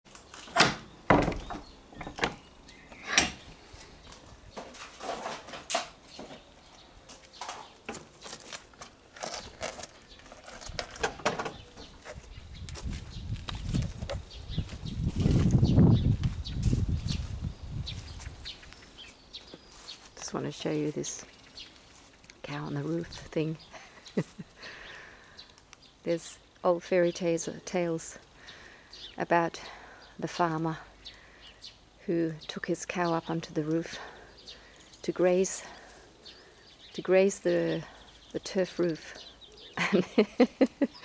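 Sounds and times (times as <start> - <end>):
wooden door knocks: 1.1 - 2.4.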